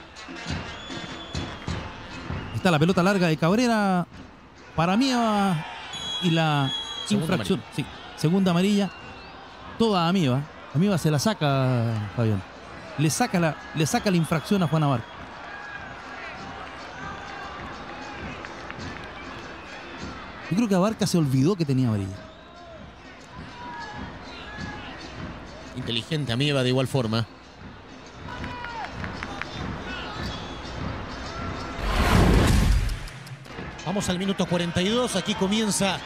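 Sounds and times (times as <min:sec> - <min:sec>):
football pitch ambience: 0:04.1 - 0:26.6.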